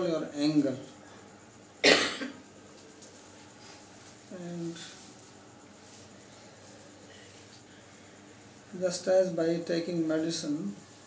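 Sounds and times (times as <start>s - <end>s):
man coughing: 1.8s - 2.4s.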